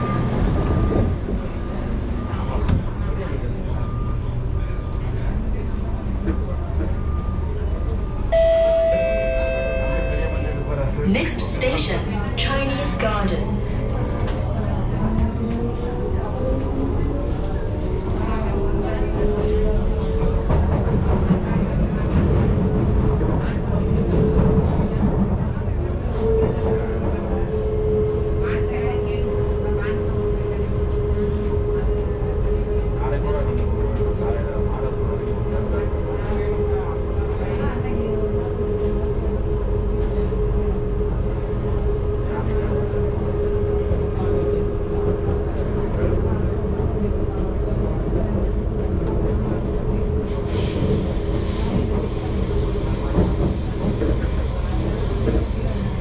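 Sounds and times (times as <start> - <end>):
train wheels rumbling on track: 0.0 - 8.4, 10.0 - 56.0.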